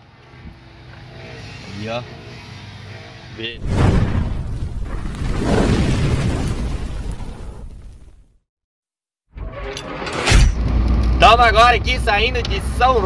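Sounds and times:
loud boom: 0:03.6 - 0:07.7.

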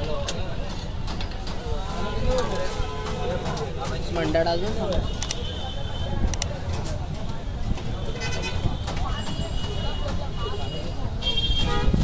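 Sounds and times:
low rumble of traffic: 0:00.0 - 0:12.0.

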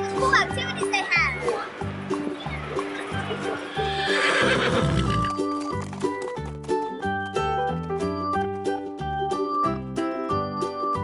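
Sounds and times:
horse neighing: 0:03.6 - 0:05.4.

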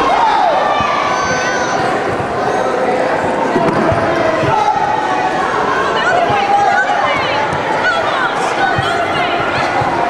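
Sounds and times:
spectators chattering and calling out: 0:00.0 - 0:10.0.

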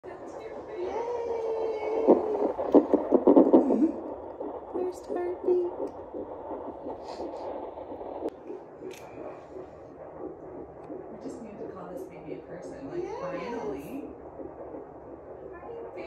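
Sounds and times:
fetal doppler heartbeat: 0:00.0 - 0:16.0.

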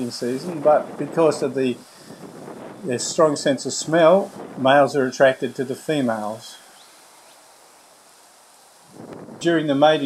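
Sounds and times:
insects hissing: 0:00.0 - 0:10.0.

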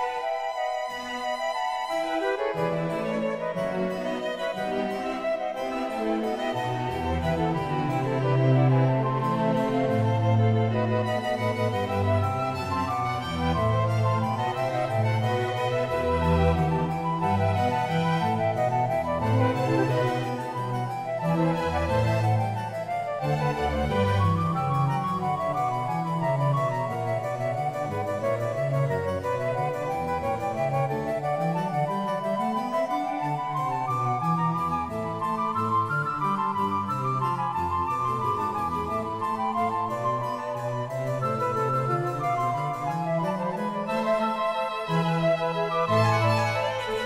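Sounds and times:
instrumental background music: 0:00.0 - 0:47.0.

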